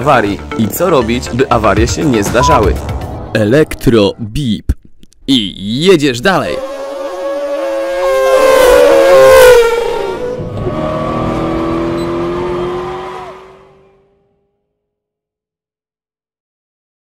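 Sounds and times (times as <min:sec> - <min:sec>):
rising engine note: 0:06.5 - 0:14.4
car engine passing by: 0:06.7 - 0:14.3.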